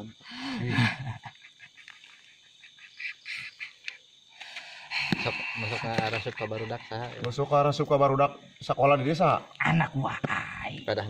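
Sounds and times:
breathy noises: 0:03.2 - 0:07.3.

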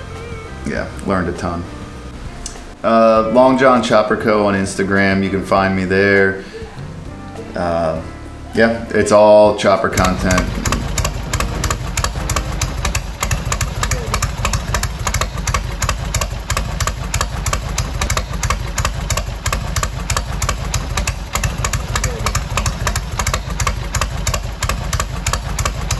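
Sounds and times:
motorcycle engine idling: 0:09.9 - 0:25.9.

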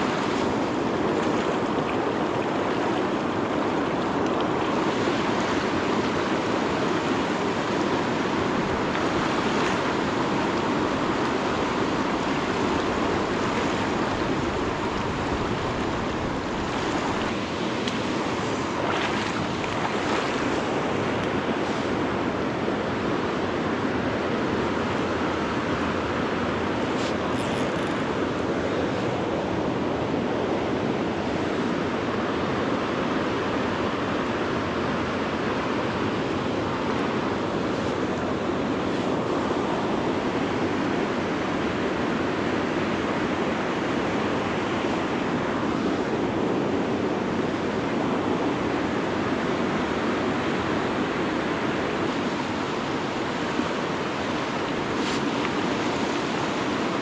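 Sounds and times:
river water rushing over rocks: 0:00.0 - 0:57.0.

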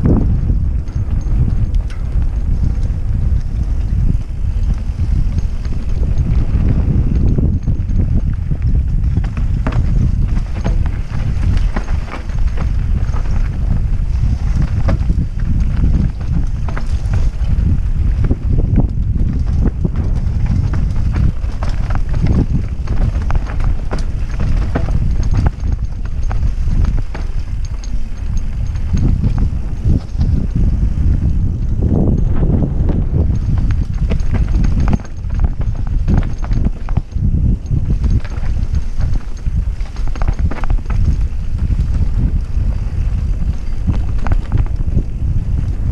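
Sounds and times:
bike knocking and rattling: 0:00.0 - 0:45.9
tyres rumbling on dirt: 0:00.0 - 0:45.9
wind on microphone: 0:00.0 - 0:45.9.

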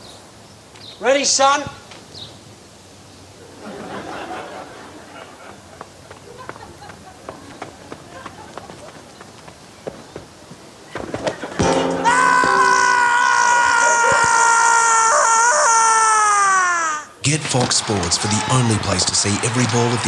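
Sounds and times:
faint backyard sounds: 0:00.0 - 0:20.0.

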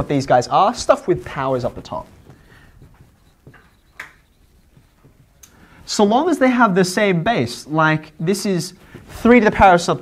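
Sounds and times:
marker scratching on whiteboard: 0:01.2 - 0:05.4.

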